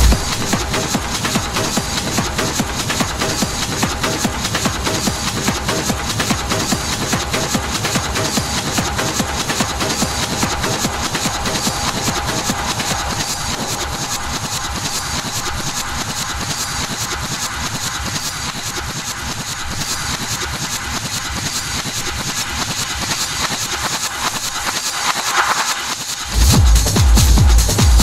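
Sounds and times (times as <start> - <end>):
techno music: 0.0 - 17.7, 18.5 - 28.0.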